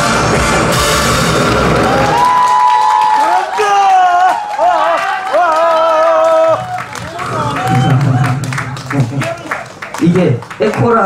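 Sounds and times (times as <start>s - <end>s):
backing track: 0.0s - 2.9s, 6.5s - 10.8s
loud barrel drums drumming: 6.5s - 9.9s.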